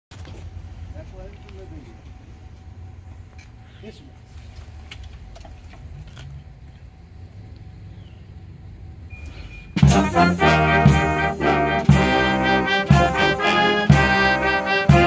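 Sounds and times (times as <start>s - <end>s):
low steady rumble: 0.1s - 15.0s
military brass band playing: 9.7s - 15.0s.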